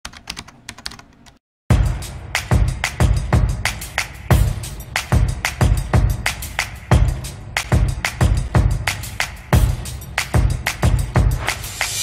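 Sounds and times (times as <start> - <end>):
keyboard typing: 0.0 - 1.4
music with heavy beat: 1.7 - 12.0.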